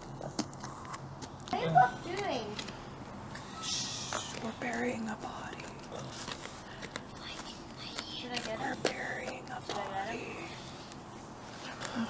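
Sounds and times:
whispered voices: 3.4s - 11.0s.

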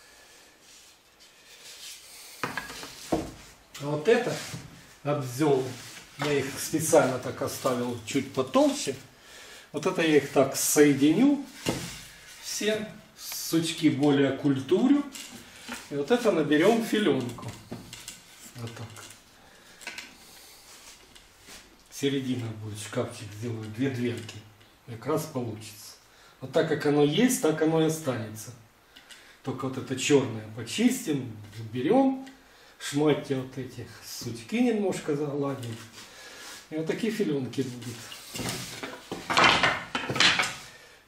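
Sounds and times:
hand rubbing over wood: 0.6s - 9.0s.

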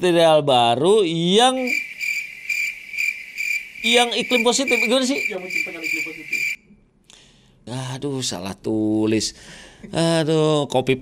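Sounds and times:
cricket chirping: 1.4s - 6.7s.

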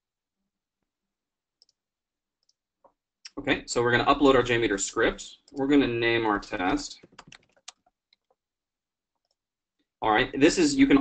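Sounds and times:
computer mouse clicks: 7.0s - 8.4s.

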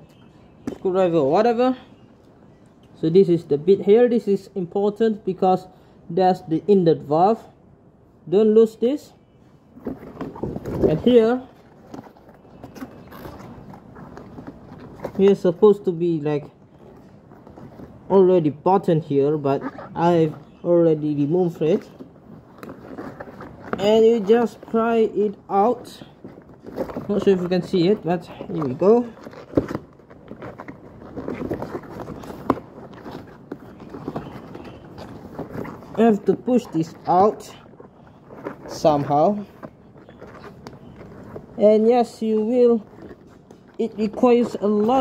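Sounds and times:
rubber rubbing: 9.8s - 45.0s.

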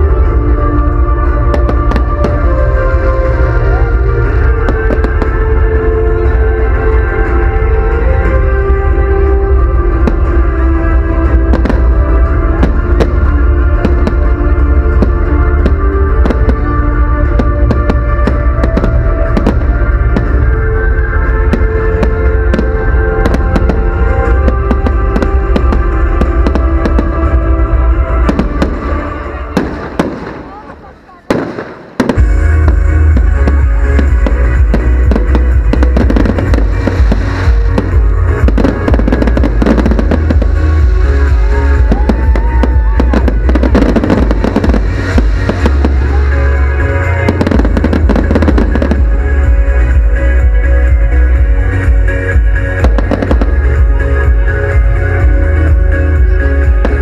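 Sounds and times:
loud music with heavy bass: 0.0s - 31.4s, 32.0s - 57.0s
fireworks bursting and crackling: 0.0s - 57.0s.

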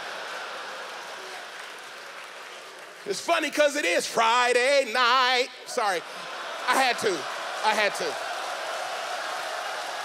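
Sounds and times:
congregation applauding: 0.0s - 10.0s.

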